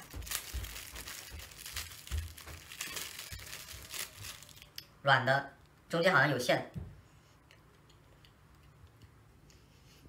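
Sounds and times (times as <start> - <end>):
crinkly packaging being opened: 0.0 - 4.8.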